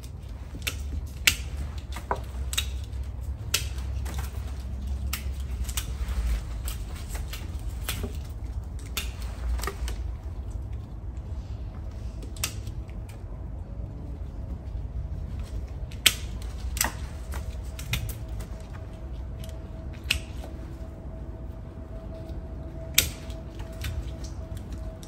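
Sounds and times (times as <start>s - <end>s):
secateurs snipping branches: 0.0s - 10.9s, 11.9s - 13.3s, 15.4s - 20.9s, 22.2s - 25.0s
low hum: 0.0s - 25.0s.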